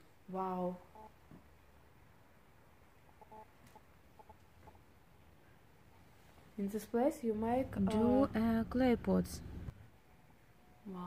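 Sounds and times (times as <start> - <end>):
chicken clucking: 3.1 - 4.8.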